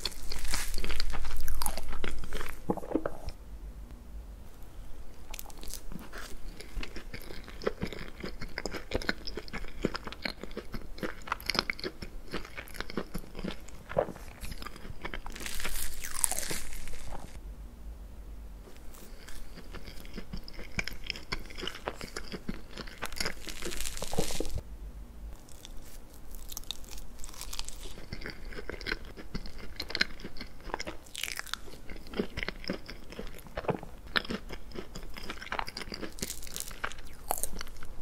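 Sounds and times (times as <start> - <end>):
mouth chewing cake: 5.3 - 17.4, 18.8 - 24.6, 25.4 - 38.0.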